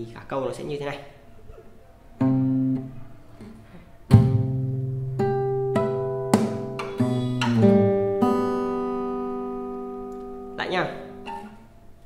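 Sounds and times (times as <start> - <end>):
fingerstyle acoustic guitar: 2.2 - 11.8
palm hit on guitar strings: 6.3 - 7.7.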